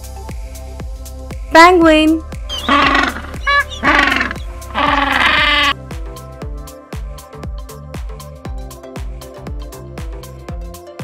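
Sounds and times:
background music with steady beat: 0:00.0 - 0:11.0
penguin calls: 0:02.5 - 0:05.8.

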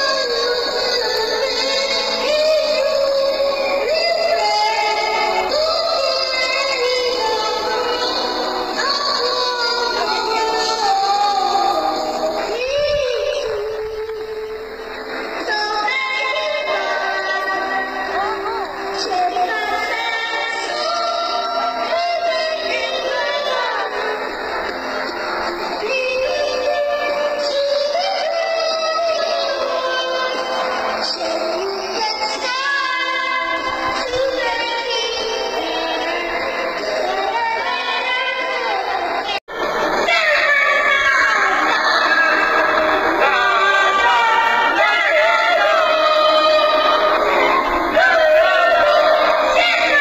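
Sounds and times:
boy singing into a microphone: 0:00.0 - 0:14.7, 0:15.4 - 0:24.2, 0:25.8 - 0:39.4
backing track: 0:00.0 - 0:50.0.

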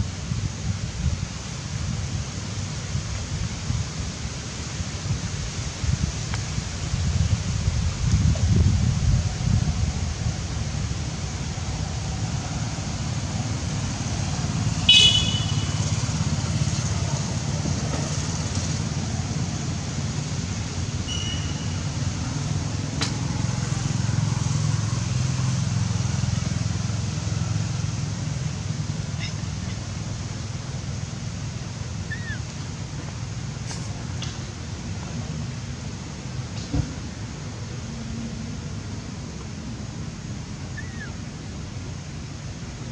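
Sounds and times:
low outdoor rumble: 0:00.0 - 0:42.9.

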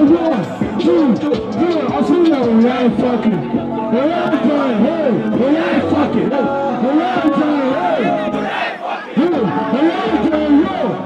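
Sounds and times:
man shouting through a microphone: 0:00.0 - 0:11.0
crowd shouting: 0:03.9 - 0:11.0.

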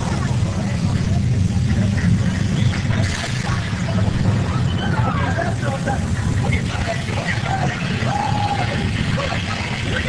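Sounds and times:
hiss: 0:00.0 - 0:10.0
tram low rumble: 0:00.0 - 0:10.0.

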